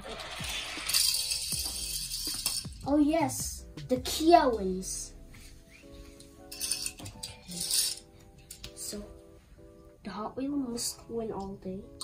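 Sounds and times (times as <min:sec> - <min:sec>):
toy cars rolling on plastic track: 0:00.0 - 0:02.5.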